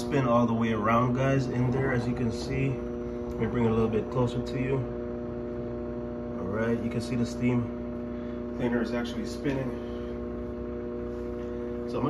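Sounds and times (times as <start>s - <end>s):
microwave oven humming: 0.0s - 12.0s.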